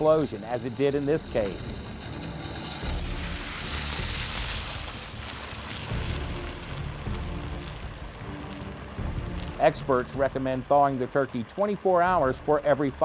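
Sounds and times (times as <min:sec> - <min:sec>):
hot oil sizzling: 0:00.0 - 0:13.0
quiet music: 0:00.0 - 0:13.0.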